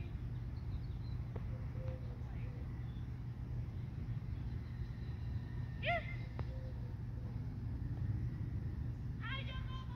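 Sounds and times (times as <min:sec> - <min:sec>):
low outdoor rumble: 0:00.0 - 0:09.9.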